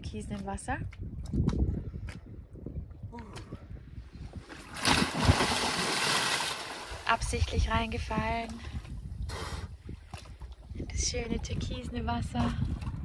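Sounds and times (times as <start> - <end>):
churning water: 4.5 - 9.0, 9.7 - 13.0
person splashing into sea: 4.6 - 7.1.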